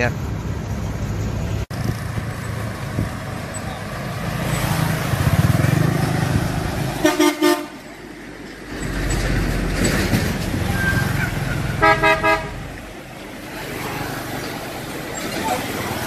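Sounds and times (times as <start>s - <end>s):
truck engines rumbling: 0.0s - 16.0s
vehicle horn short toots: 7.0s - 7.8s, 11.8s - 12.6s.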